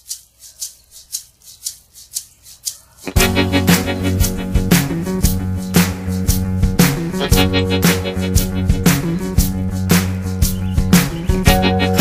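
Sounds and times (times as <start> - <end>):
shaker rhythm: 0.0 - 12.0.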